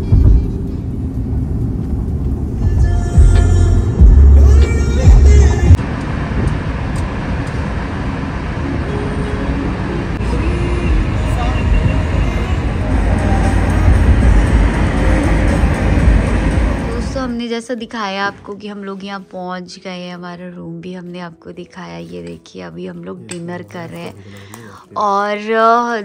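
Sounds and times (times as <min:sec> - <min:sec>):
car road and wind noise: 0:00.0 - 0:17.5
loud low rumble: 0:00.0 - 0:17.6.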